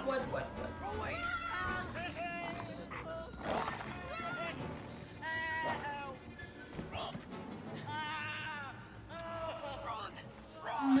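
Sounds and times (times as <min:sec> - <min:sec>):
tense film score: 0:00.0 - 0:11.0.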